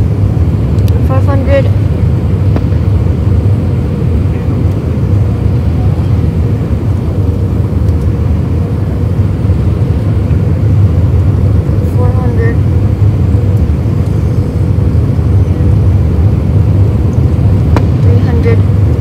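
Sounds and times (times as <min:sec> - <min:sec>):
aircraft cabin engine rumble: 0:00.0 - 0:19.0.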